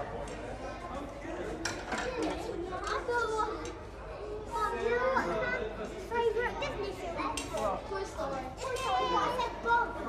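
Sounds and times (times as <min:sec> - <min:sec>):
indistinct chatter in a hall: 0:00.0 - 0:10.0.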